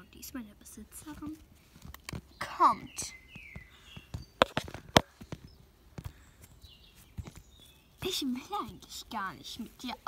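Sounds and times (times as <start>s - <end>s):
toy hooves tapping on ground: 0.9s - 10.0s.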